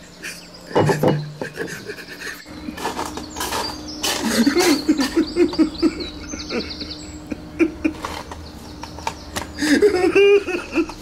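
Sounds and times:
man sobbing and wailing: 0:09.6 - 0:11.0.

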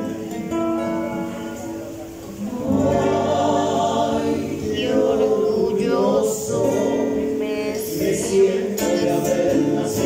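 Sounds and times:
strummed acoustic guitars: 0:00.0 - 0:10.0
male voices singing in harmony: 0:02.5 - 0:10.0.

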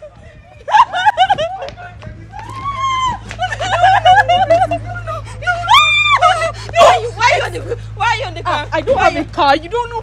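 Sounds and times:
woman wailing: 0:02.5 - 0:07.7.

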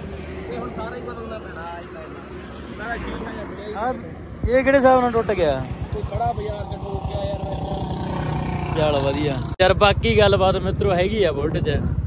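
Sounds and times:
motorcycle engine idling: 0:04.8 - 0:12.0.

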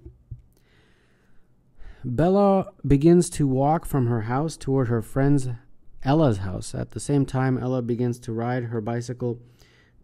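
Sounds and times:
person breathing out: 0:00.6 - 0:02.1, 0:09.4 - 0:10.0
short intake of breath: 0:09.4 - 0:10.0.

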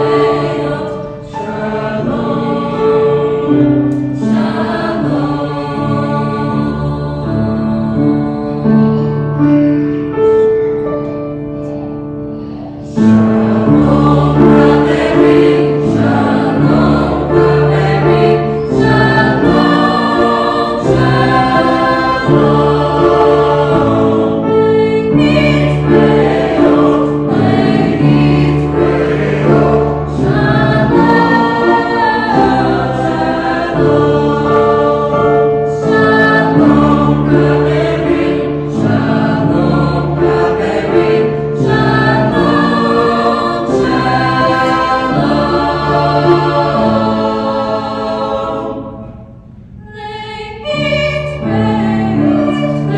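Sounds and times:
mixed choir singing in harmony: 0:00.0 - 0:10.9, 0:11.6 - 0:52.9.

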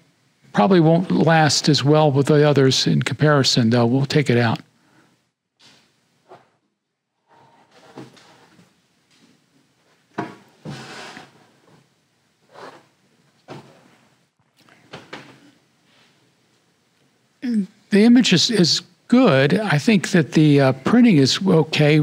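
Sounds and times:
photo prints knocking and rustling: 0:10.1 - 0:10.9.

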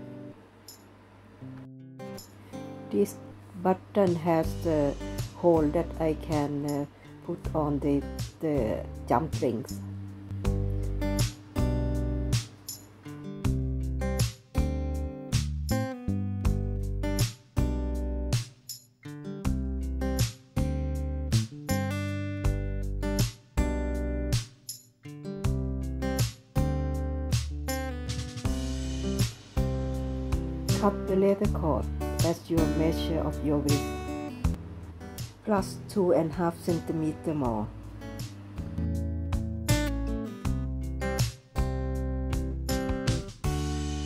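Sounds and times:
acoustic guitar tune: 0:00.0 - 0:44.0.

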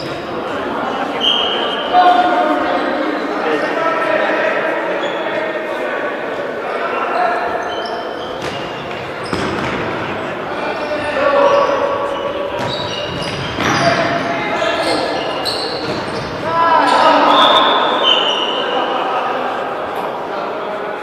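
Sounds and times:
shoes squeaking on floor: 0:00.0 - 0:00.3, 0:06.7 - 0:18.8
players calling out: 0:00.0 - 0:21.0.

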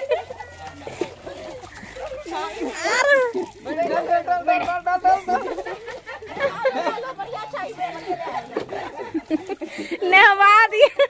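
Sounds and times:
excited voices: 0:00.0 - 0:11.0
water splashing: 0:00.0 - 0:11.0.

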